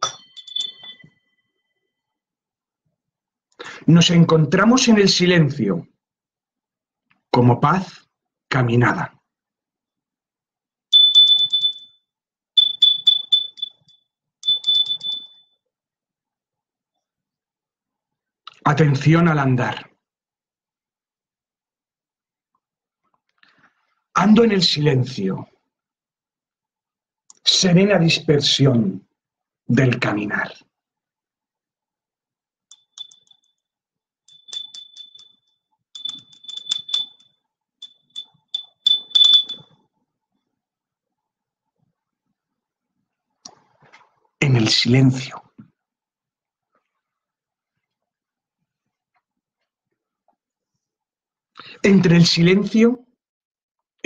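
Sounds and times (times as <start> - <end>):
high-pitched electronic beeping: 0.0 - 1.2, 11.0 - 11.8, 12.6 - 15.4, 34.3 - 35.2, 36.0 - 37.2, 37.8 - 39.6.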